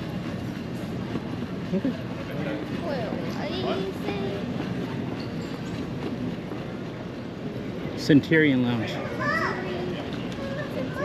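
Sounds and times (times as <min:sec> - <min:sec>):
faint voices: 0:06.3 - 0:11.0.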